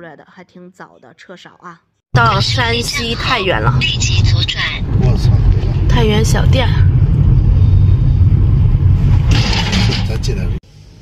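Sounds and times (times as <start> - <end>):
car rumbling from inside cabin: 2.2 - 10.6.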